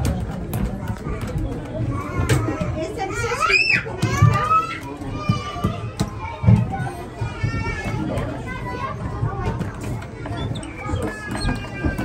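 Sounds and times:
children's excited chatter: 0.0 - 12.0.

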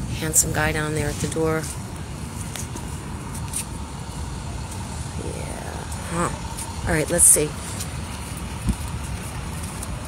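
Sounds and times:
city background rumble: 0.0 - 10.0.

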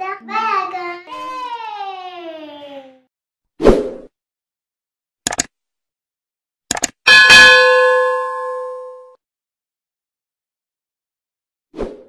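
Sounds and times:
notification bell ding: 7.1 - 9.2.

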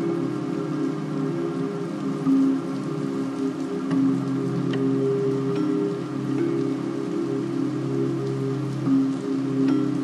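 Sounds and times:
rain: 0.0 - 10.0
soft slow ambient music: 0.0 - 10.0.

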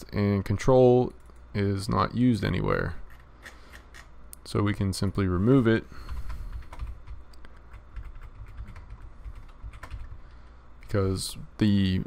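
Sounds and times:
low steady hum: 0.0 - 12.0
keyboard keys clicking: 6.1 - 10.2.

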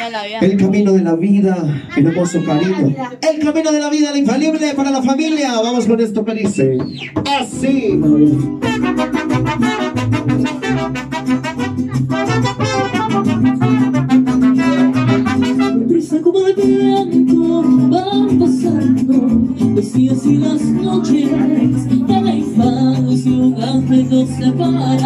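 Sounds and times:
acoustic bass guitar: 0.0 - 25.0
strummed guitars: 5.9 - 25.0
trumpets playing melody: 8.6 - 17.1.

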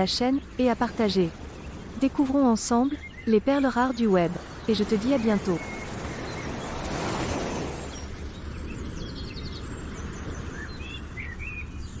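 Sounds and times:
low traffic hum: 0.0 - 12.0
small birds chirping: 0.0 - 12.0.

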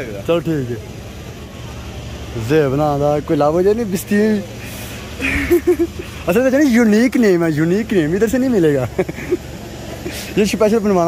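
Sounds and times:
low street hum: 0.0 - 11.0.

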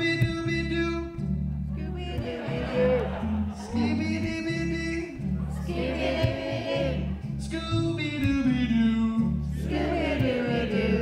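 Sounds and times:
man singing into a microphone: 0.0 - 1.2, 2.1 - 5.2, 7.4 - 11.0
electric bass notes: 0.0 - 11.0.

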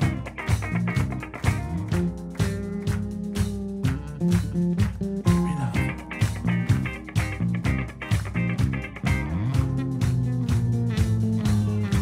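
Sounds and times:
electric bass walking: 0.0 - 12.0
electric guitar chords: 0.0 - 12.0
keyboard chords: 0.0 - 12.0
steady drum beat: 0.0 - 12.0.

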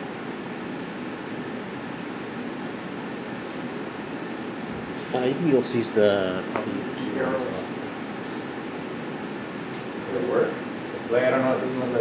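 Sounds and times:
fan-like hum and hiss: 0.0 - 12.0.

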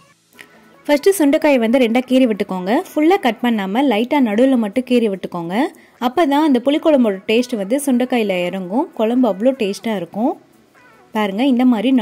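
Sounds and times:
woman speaking: 0.9 - 10.4, 11.1 - 12.0.

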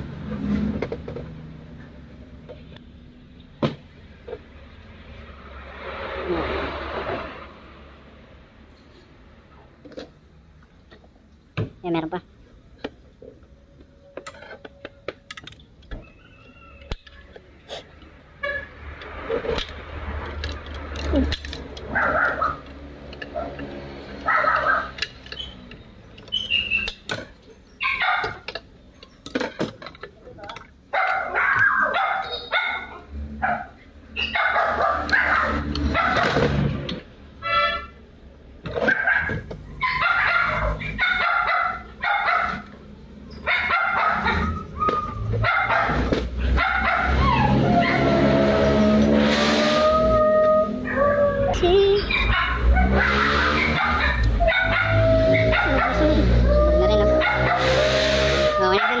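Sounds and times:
animal calls: 46.7 - 59.0.

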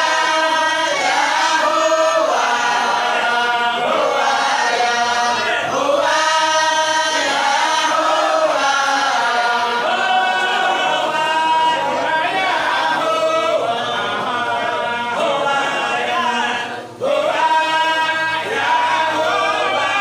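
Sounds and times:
group of voices chanting: 0.0 - 20.0.

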